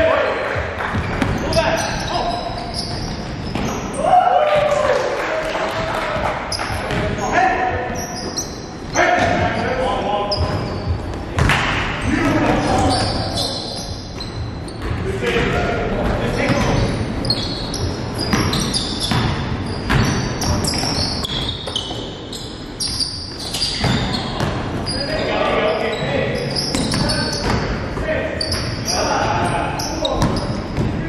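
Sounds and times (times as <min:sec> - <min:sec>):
sneakers squeaking: 0:00.5 - 0:05.0, 0:05.8 - 0:31.0
basketball bouncing on wooden floor: 0:00.8 - 0:01.5, 0:10.3 - 0:12.9, 0:17.7 - 0:22.0, 0:23.7 - 0:24.7, 0:26.7 - 0:28.6.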